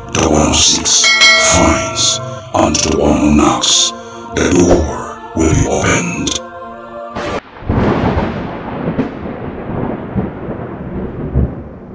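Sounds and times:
thunder rumbling: 7.4s - 11.9s.

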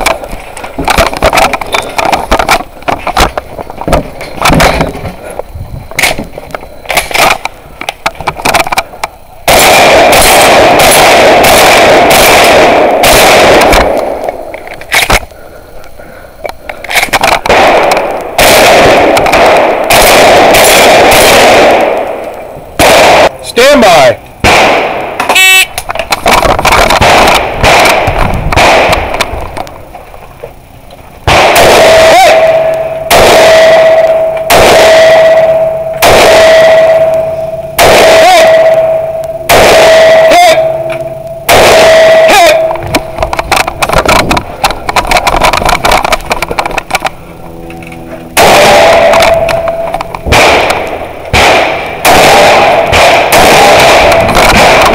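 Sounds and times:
gunshots with short echo: 0.0s - 5.2s, 9.5s - 15.2s, 16.9s - 23.8s, 24.4s - 29.6s, 31.2s - 47.1s, 48.4s - 54.9s
steady tone: 24.8s - 54.9s.

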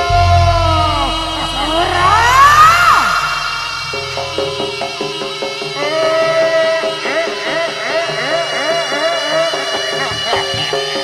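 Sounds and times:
low rumble: 0.0s - 5.2s
ensemble music with sliding notes: 0.0s - 11.0s
sustained pitched tones: 0.0s - 11.0s.

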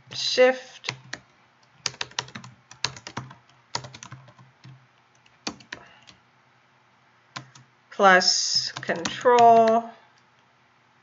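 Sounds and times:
computer keyboard typing clicks: 0.9s - 1.2s, 1.8s - 6.1s, 7.4s - 7.7s, 8.7s - 9.8s.

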